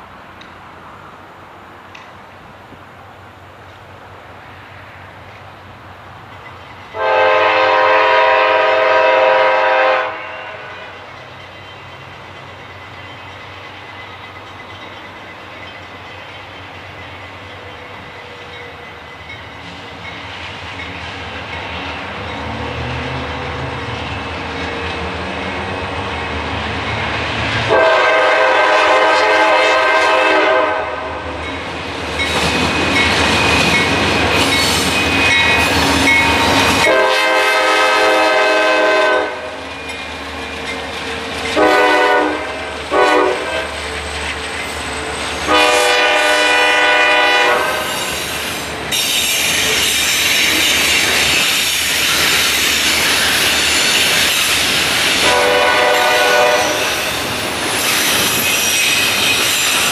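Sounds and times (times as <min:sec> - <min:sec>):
diesel locomotive engine rumble: 0:00.0 - 0:59.9
train wheel noise: 0:00.0 - 0:59.9
locomotive air horn blasts: 0:06.9 - 0:11.0, 0:27.7 - 0:31.2, 0:36.7 - 0:39.6, 0:41.6 - 0:43.8, 0:45.4 - 0:48.0, 0:55.2 - 0:57.0.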